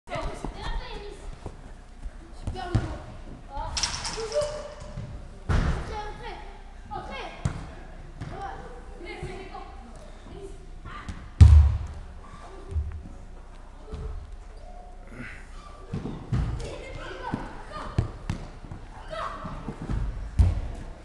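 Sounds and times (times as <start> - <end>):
football being kicked: 11.4 - 11.9
heavy low thud: 11.4 - 12.1.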